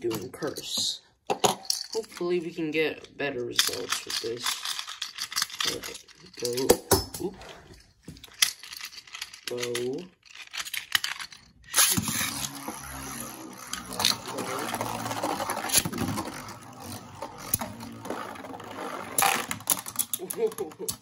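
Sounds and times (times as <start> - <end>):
spinning tops clacking together: 8.3 - 21.0
spinning tops scraping and humming: 10.6 - 20.9.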